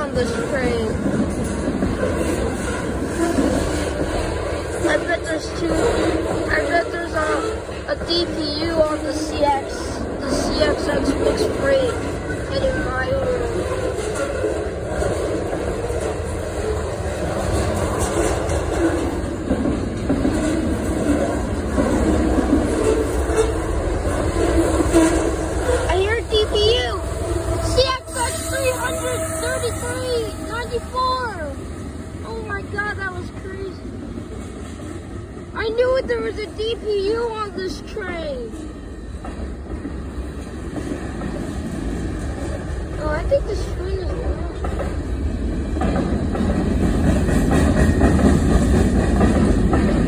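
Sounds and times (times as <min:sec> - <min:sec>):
freight train cars rumbling past: 0:00.0 - 0:50.0.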